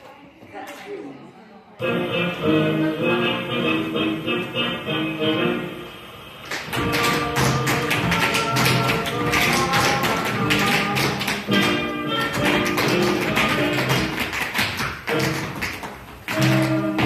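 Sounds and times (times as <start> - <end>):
latin dance music: 1.8 - 17.0
rapid sharp taps: 6.5 - 17.0.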